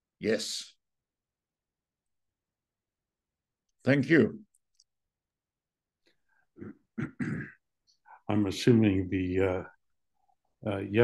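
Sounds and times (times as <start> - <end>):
man clearing his throat: 6.6 - 7.6.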